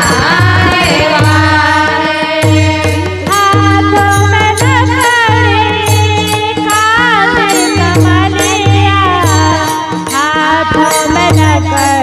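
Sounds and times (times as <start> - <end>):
steady drone: 0.0 - 4.7
low drum-like pulse: 0.0 - 4.8
women singing into microphones: 0.0 - 12.0.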